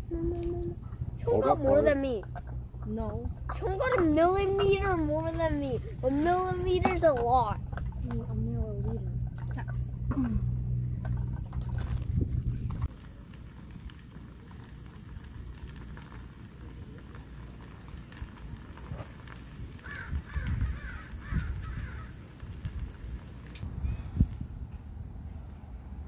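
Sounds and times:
faint outdoor background noise: 0:00.0 - 0:26.0
low steady rumble: 0:00.0 - 0:26.0
crow cawing: 0:19.8 - 0:22.1.

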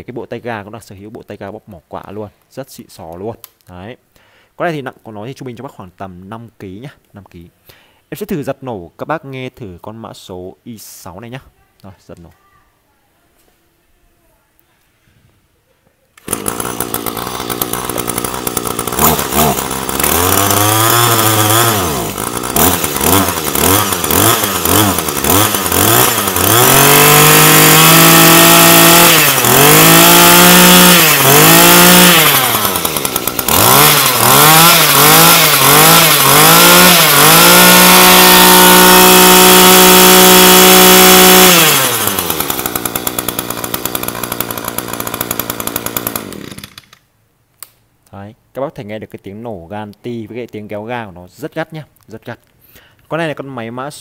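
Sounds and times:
two-stroke brush-cutter engine revving: 0:16.2 - 0:47.0.

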